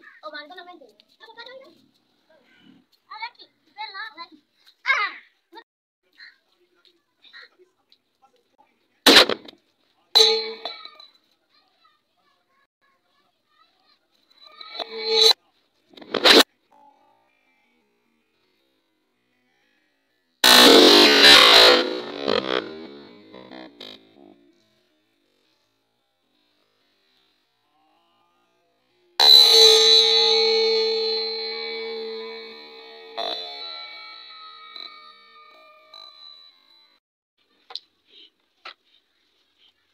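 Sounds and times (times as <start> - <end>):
distant children's voices: 0.0 - 7.8, 10.6 - 15.5
steel tumbler ringing: 29.2 - 37.0.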